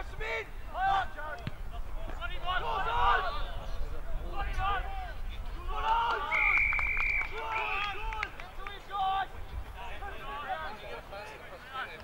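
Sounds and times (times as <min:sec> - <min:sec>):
whistle blast: 0:06.3 - 0:07.6.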